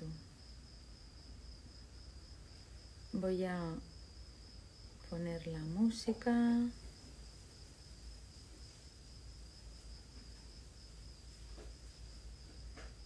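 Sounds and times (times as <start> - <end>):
high cricket trill: 0.0 - 13.0.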